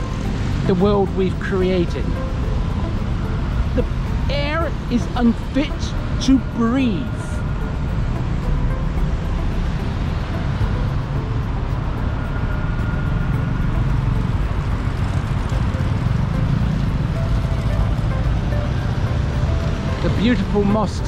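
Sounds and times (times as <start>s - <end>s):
dense road traffic: 0.0s - 21.0s
music: 0.0s - 21.0s.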